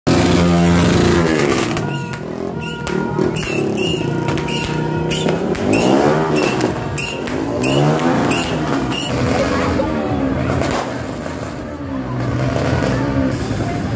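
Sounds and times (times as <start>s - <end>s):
motorcycle engine revving: 0.1s - 13.8s.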